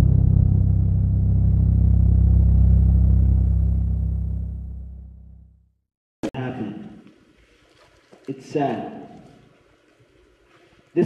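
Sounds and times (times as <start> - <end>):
deep boom rumble: 0.0 - 5.5.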